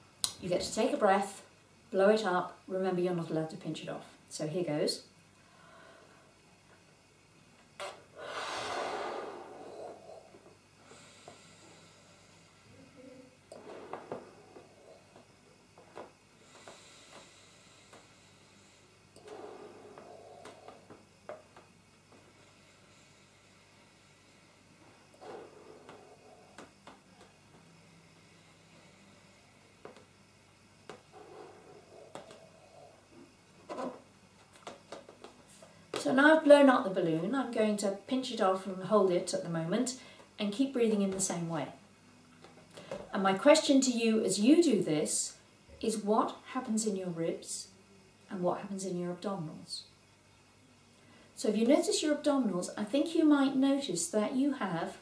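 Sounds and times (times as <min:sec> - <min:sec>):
person blowing up balloon: 0:07.8 - 0:10.0
breaths blowing up balloon: 0:07.8 - 0:12.8, 0:13.5 - 0:15.3, 0:16.0 - 0:21.0
nose inhaling: 0:07.8 - 0:15.3, 0:16.0 - 0:21.0, 0:22.1 - 0:30.0, 0:30.9 - 0:34.0.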